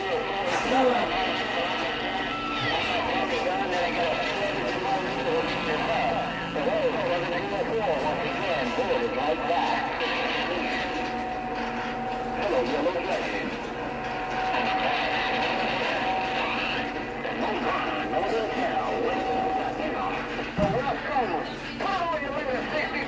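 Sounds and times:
garbled radio voices: 0.0s - 23.0s
steady radio tone: 0.0s - 23.0s.

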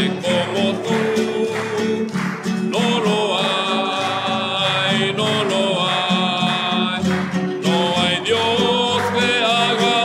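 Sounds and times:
person singing a hymn: 0.0s - 10.0s
strummed acoustic guitar: 0.0s - 10.0s.

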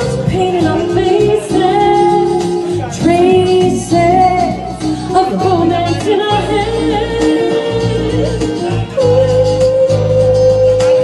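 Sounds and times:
karaoke backing track: 0.0s - 11.0s
woman singing into microphone: 0.0s - 11.0s.

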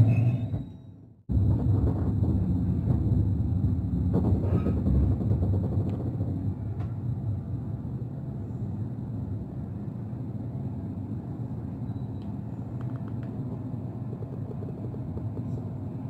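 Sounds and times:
train rumbling on track: 0.0s - 16.0s.

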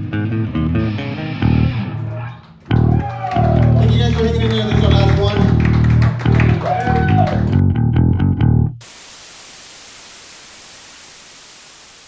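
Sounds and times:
static hiss: 8.8s - 12.0s.

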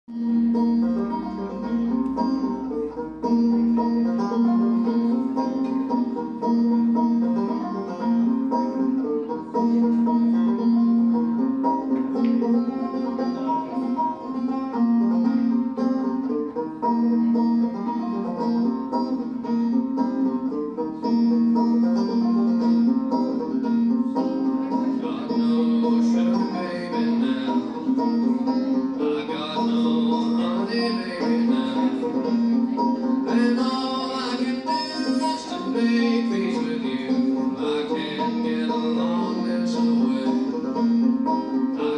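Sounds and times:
solo banjo tune: 0.1s - 41.9s.

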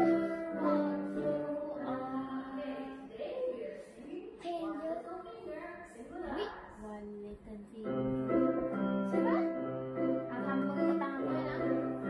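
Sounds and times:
keyboard music through tv speaker: 7.9s - 12.0s.

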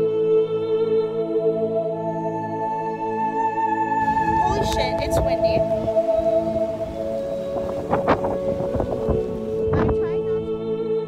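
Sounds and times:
ambient organ-like music: 0.0s - 11.0s
wind noise on microphone: 4.0s - 10.8s.

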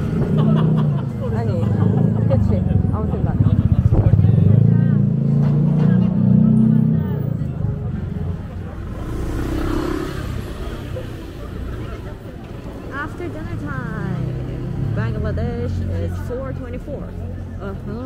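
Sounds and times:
motor scooter passing: 8.5s - 12.1s.

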